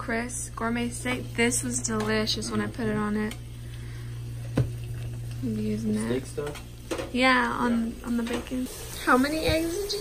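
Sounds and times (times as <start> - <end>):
low hum: 0.0 - 6.7
butter sizzling in a frying pan: 3.0 - 10.0.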